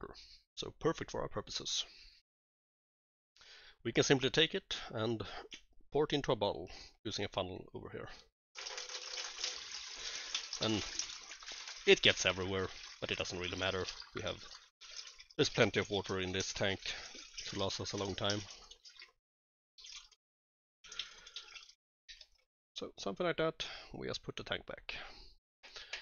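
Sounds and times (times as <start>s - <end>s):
water pouring into plastic funnel: 8.6s - 19.2s, 19.8s - 20.2s, 20.9s - 22.4s.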